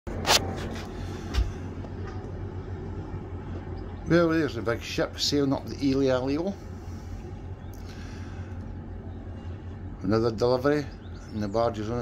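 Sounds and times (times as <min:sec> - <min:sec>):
boat engine drone: 0:00.1 - 0:12.0.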